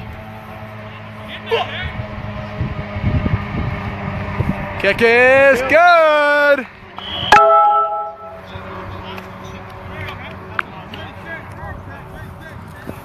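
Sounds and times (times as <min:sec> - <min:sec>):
sharp knock with ringing tone: 0:07.3 - 0:08.4.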